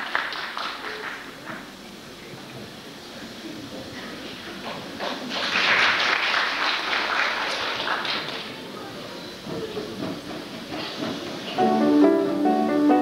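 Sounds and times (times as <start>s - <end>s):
audience applauding: 0.0s - 1.7s, 4.6s - 8.8s
hall noise: 9.1s - 13.0s.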